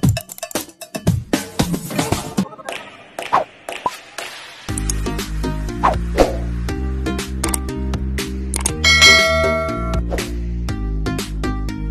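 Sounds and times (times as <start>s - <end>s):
bell-like ding: 8.8s - 10.0s.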